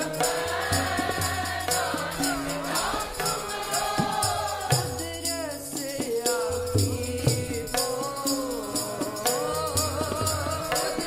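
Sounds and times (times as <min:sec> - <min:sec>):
women singing together: 0:00.0 - 0:05.2, 0:08.5 - 0:11.0
harmonium: 0:00.0 - 0:11.0
tabla strokes: 0:00.0 - 0:11.0.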